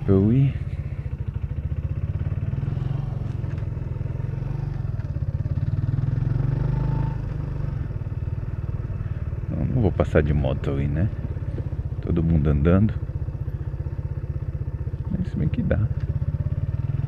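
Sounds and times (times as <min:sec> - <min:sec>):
motorcycle engine running: 0:00.0 - 0:17.0.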